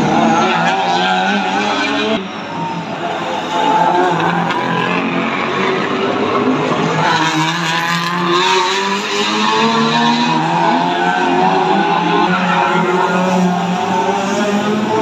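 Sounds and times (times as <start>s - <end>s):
racing car engines: 0.0s - 15.0s.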